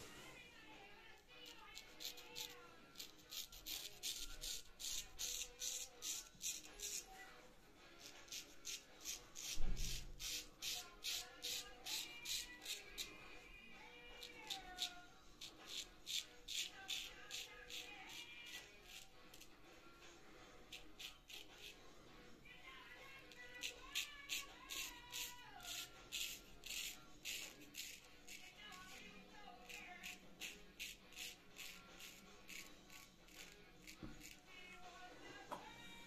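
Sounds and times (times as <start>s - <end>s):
razor scraping stubble: 1.1s - 35.5s.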